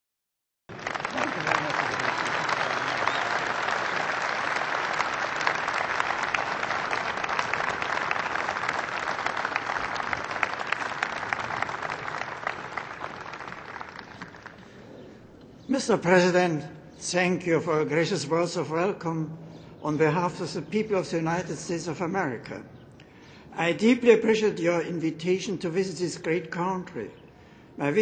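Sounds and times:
large crowd applauding: 0.7s - 14.8s.

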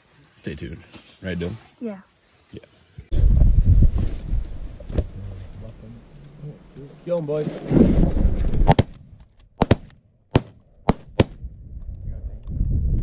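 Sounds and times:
wind on microphone: 3.1s - 5.9s, 7.5s - 9.2s, 11.0s - 13.0s
rustling: 3.8s - 9.5s
shotgun shots with echo: 8.6s - 9.0s, 9.6s - 11.4s.

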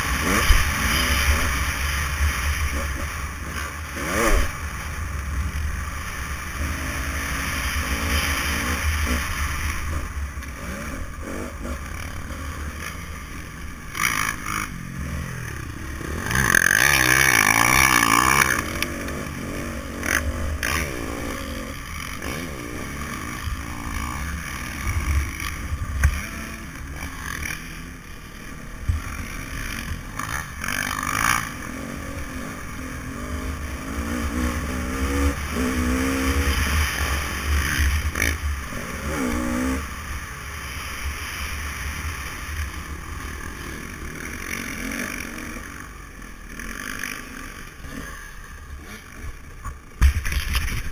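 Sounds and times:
dirt bike engine revving: 0.0s - 50.9s.

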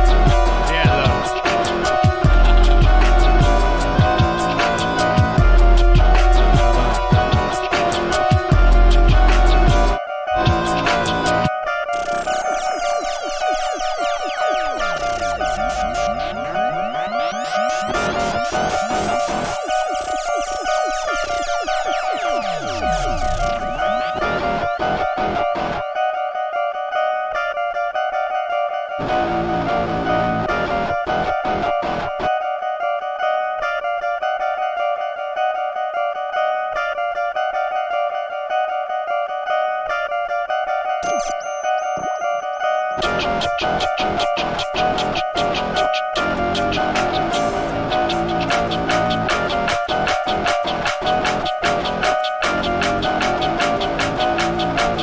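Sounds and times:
held synth notes: 0.0s - 25.0s
fast clicking beat: 43.0s - 55.0s.

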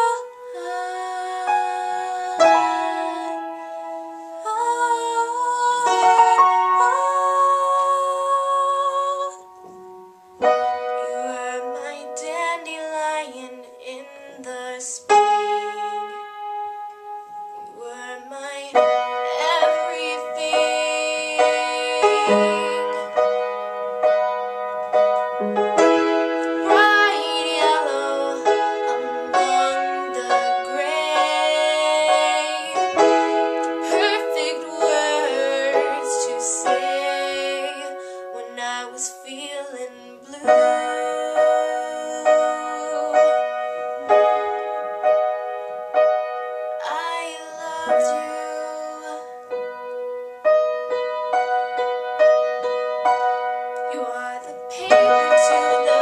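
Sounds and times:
girl singing: 0.0s - 9.8s, 10.4s - 16.9s, 17.6s - 24.4s, 25.0s - 45.2s, 46.2s - 49.7s, 53.8s - 56.0s
piano accompaniment: 0.0s - 56.0s.

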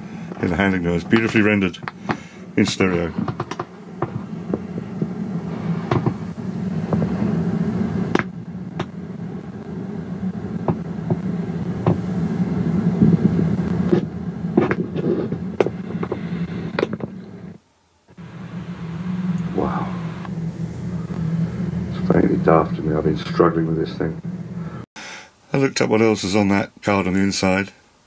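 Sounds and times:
low rumble from speakers: 0.0s - 24.8s.

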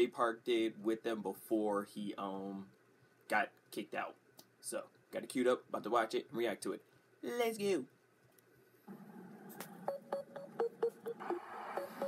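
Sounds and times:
low hiss: 0.0s - 10.0s
short beeping notes: 9.9s - 12.0s.

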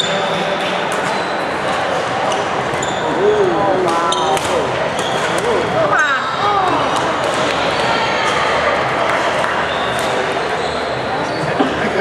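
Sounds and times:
shoe squeaks: 0.0s - 0.2s, 1.0s - 1.6s, 2.3s - 5.4s, 9.6s - 11.7s
hall noise with voices: 0.0s - 12.0s.

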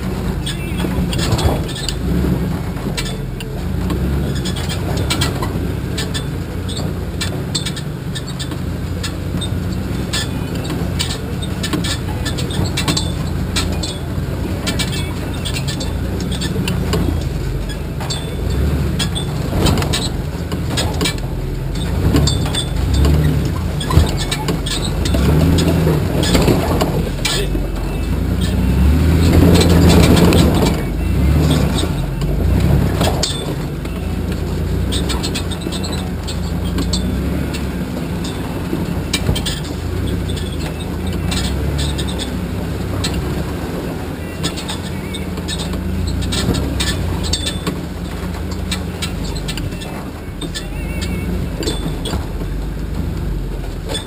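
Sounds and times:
clanks and rattles: 0.0s - 54.0s
engine running under load: 0.0s - 54.0s.

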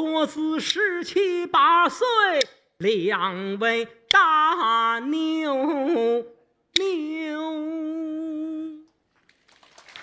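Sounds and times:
man singing a held note: 3.9s - 8.9s.

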